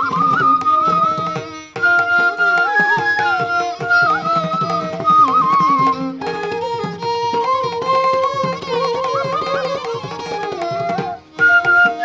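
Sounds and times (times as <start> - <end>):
bamboo flute melody: 0.0 - 12.0.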